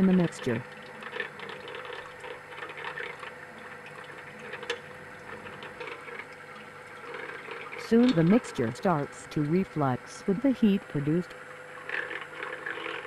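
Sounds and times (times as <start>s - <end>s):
stirrer hum: 0.0s - 13.0s.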